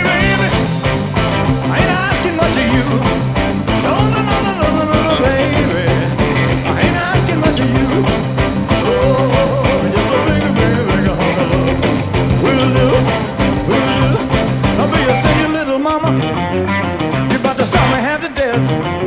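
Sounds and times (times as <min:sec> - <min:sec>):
fast steady drum beat: 0:00.0 - 0:15.6
electric guitar strumming: 0:00.0 - 0:19.0
rock and roll band recording: 0:00.0 - 0:19.0.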